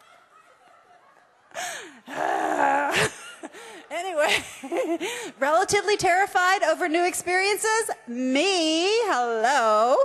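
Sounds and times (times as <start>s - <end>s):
woman laughing: 0.0s - 5.2s.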